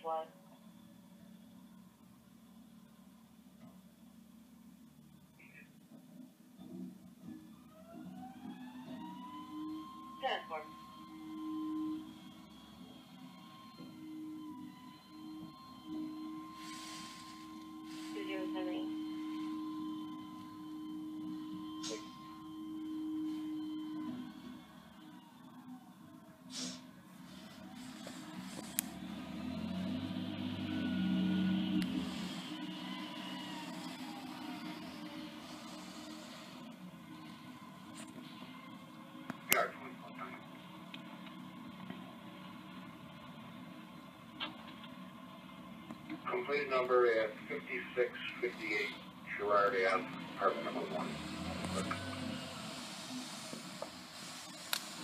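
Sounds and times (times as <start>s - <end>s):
garbage truck hydraulics whining: 6.6s - 38.8s, 50.1s - 55.0s.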